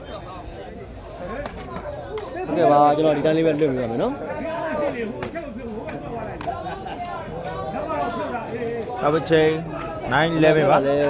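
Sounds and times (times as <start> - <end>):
men talking and calling: 0.0 - 11.0.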